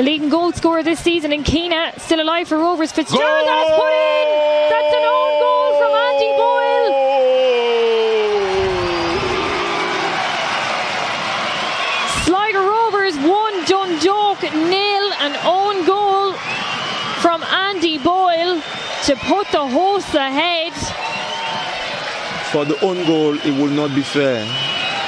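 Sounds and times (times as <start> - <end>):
crowd cheering: 0.0 - 25.0
commentator shouting: 3.0 - 9.5.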